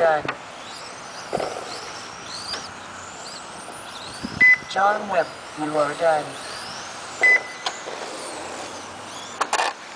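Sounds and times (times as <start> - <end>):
short electronic beep: 4.4 - 4.7, 7.2 - 7.6.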